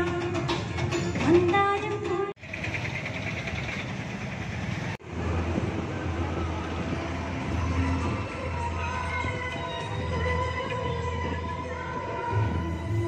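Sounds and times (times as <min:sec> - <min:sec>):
traffic rumble: 0:00.3 - 0:13.0.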